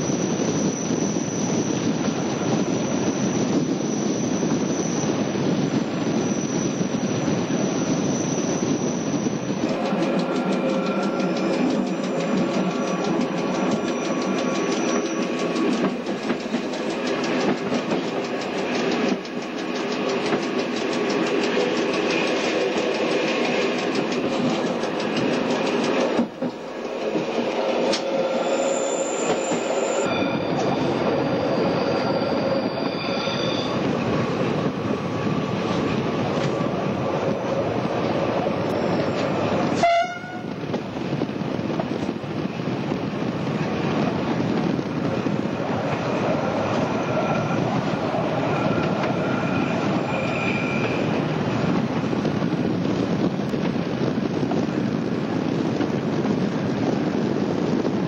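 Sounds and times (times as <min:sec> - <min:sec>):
railcar running gear noise: 0:00.0 - 0:58.0
rail clicks: 0:07.2 - 0:58.0.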